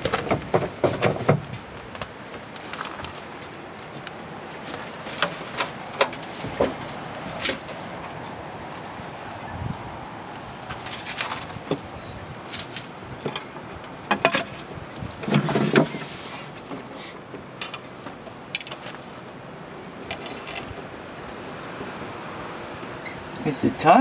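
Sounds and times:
scuffle on dirt floor: 0.0 - 7.7, 8.7 - 13.0.

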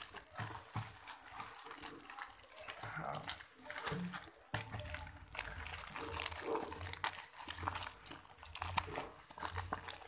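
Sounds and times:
plastic mailer bag crinkling: 0.0 - 10.0.

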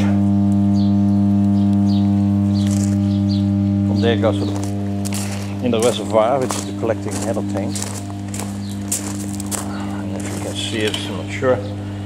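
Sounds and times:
transformer humming: 0.0 - 12.0.

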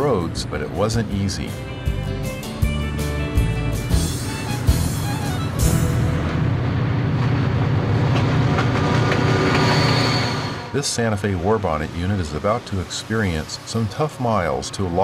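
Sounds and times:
background music: 0.0 - 7.1
freight locomotive engines rumbling: 0.0 - 15.0.

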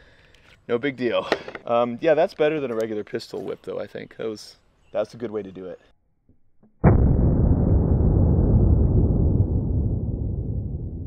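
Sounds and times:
slowed gunshot boom: 6.8 - 11.0.

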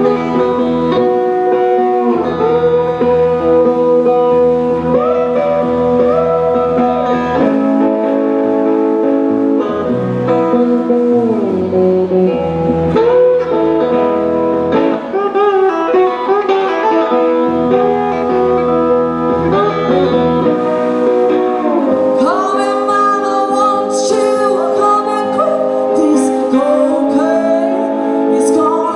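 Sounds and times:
slide lap steel guitar: 0.0 - 28.9
woman singing: 21.7 - 28.9.

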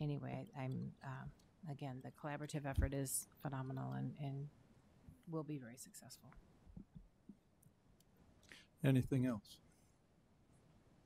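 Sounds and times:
man speaking: 8.8 - 9.6.

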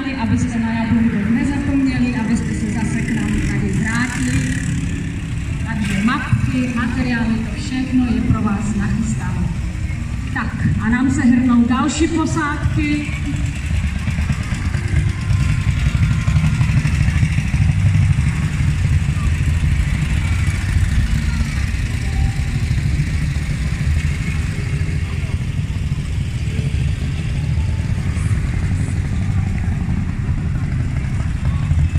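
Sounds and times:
motorcycles rumbling past: 0.0 - 31.9.

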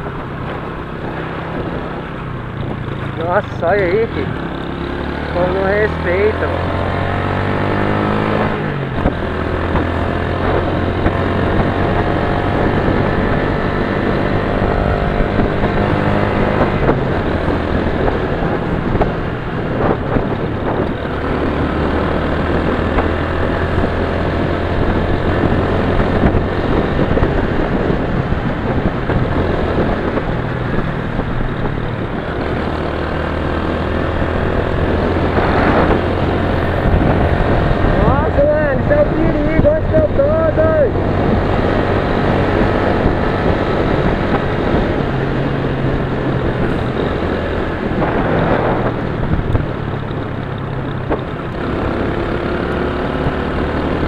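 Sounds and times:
motorcycle engine running: 0.0 - 54.0
wind rushing over microphone: 0.0 - 54.0.

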